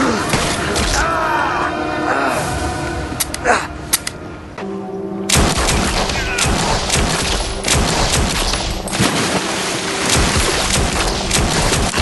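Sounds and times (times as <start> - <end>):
low music drone: 0.0 - 12.0
rapid handgun gunshots: 10.1 - 12.0.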